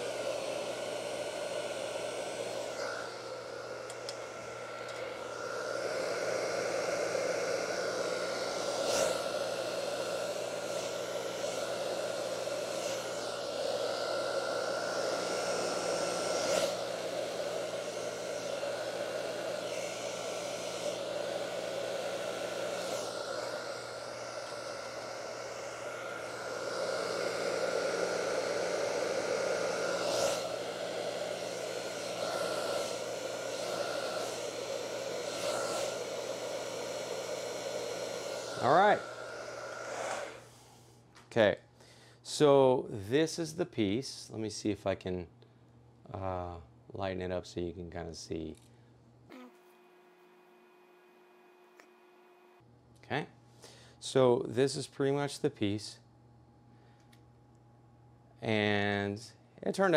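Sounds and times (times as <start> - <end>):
blow dryer running: 0.0 - 40.8.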